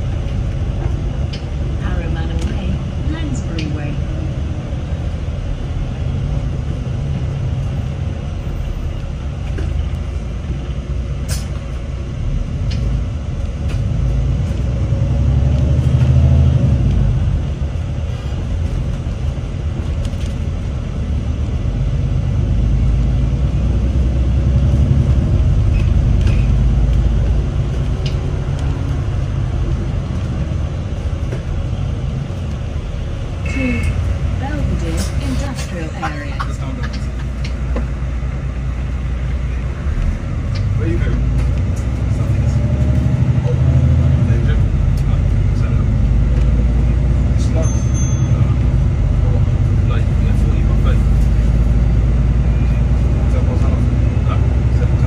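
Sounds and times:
bus engine rumble: 0:00.0 - 0:55.0.

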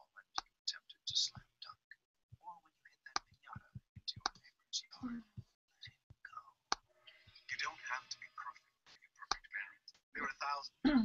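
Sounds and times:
faint low speech: 0:00.0 - 0:11.0.

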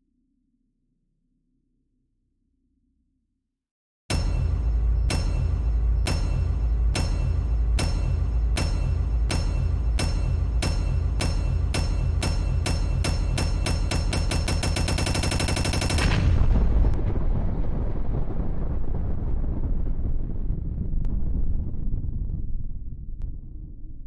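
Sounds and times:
explosion with rumble: 0:04.1 - 0:24.0.

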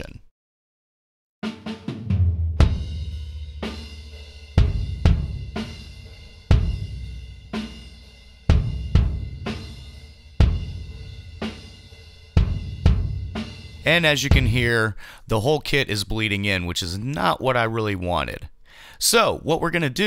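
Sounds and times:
snare hi-hat and cymbals: 0:01.4 - 0:14.7
kick drum hits: 0:04.6 - 0:05.6, 0:08.5 - 0:09.5, 0:12.4 - 0:13.5.

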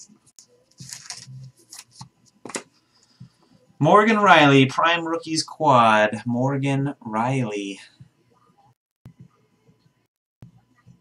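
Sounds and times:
cards sliding and scraping: 0:00.8 - 0:02.6.

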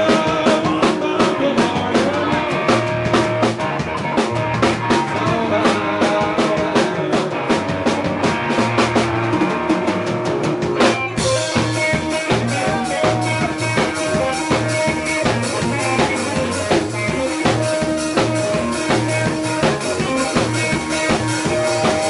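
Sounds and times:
busy drum groove: 0:00.0 - 0:22.0
electric guitar: 0:00.0 - 0:22.0.

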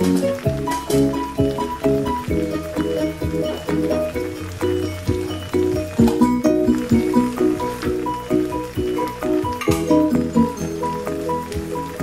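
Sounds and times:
music with repeating short notes: 0:00.0 - 0:12.0.

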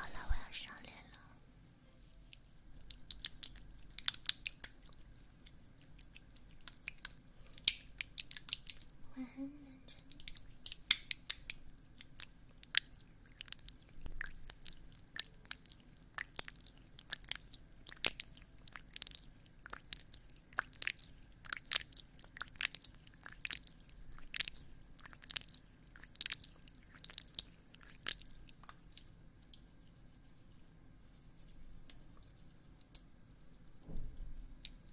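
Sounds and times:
wet sticky mouth clicks: 0:02.1 - 0:09.0, 0:09.9 - 0:29.7.

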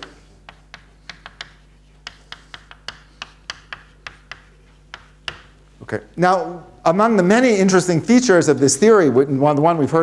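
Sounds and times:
chalk tapping and scratching: 0:00.0 - 0:05.7.

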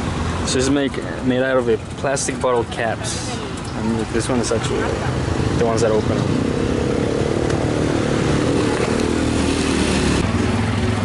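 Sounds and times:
motor vehicle engine running: 0:00.0 - 0:11.0.

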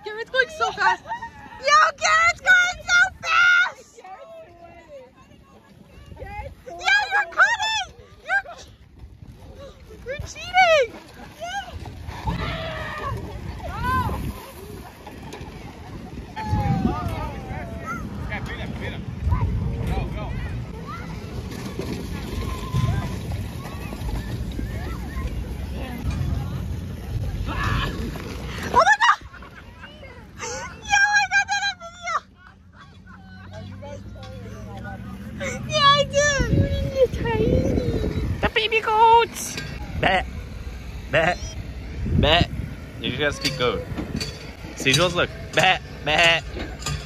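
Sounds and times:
people's voices outdoors: 0:00.0 - 0:47.0.

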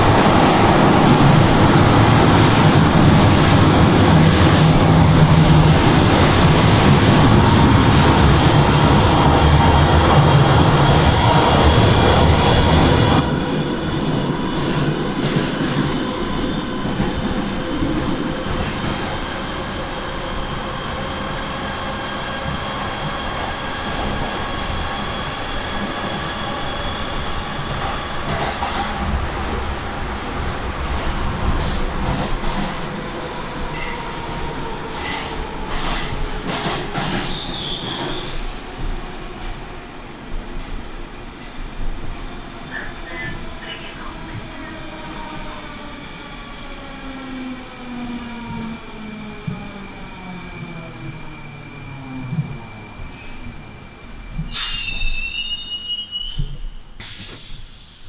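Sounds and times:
train wheels rumbling on rail: 0:00.0 - 0:58.0
wheel squeal: 0:49.9 - 0:56.8.

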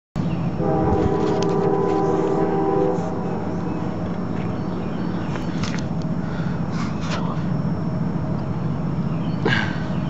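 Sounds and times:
train rumble: 0:00.2 - 0:10.0
locomotive air horn chord: 0:00.6 - 0:05.0.

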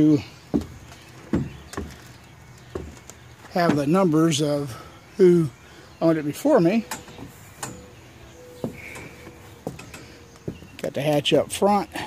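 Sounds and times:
faint knocks: 0:00.5 - 0:04.0, 0:08.6 - 0:10.8.

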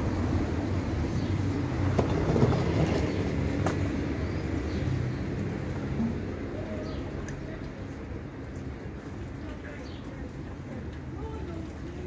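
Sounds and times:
tram rumble and motor hum: 0:00.0 - 0:12.0.

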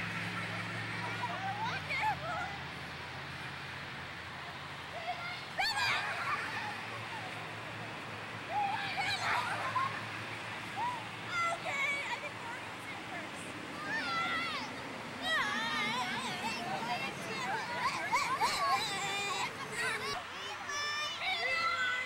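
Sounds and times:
children calling out and squealing: 0:00.0 - 0:02.8, 0:04.8 - 0:22.0.

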